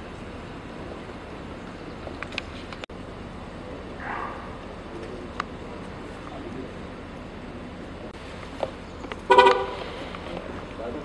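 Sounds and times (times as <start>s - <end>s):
car horn toot: 9.2s - 9.8s.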